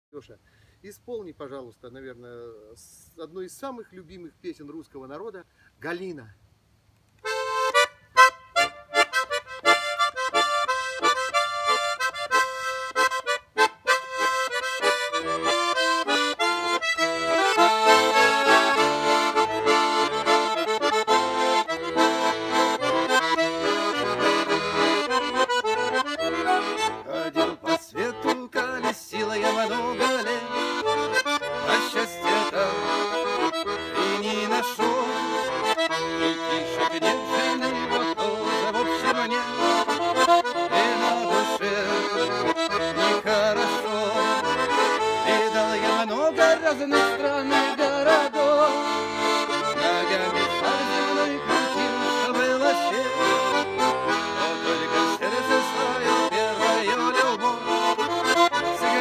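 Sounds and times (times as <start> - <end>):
button accordion playing: 7.2 - 59.0.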